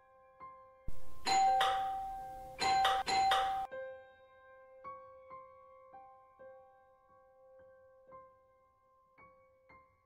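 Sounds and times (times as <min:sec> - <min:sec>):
soft piano music: 0:00.0 - 0:10.0
doorbell ringing: 0:00.9 - 0:03.7.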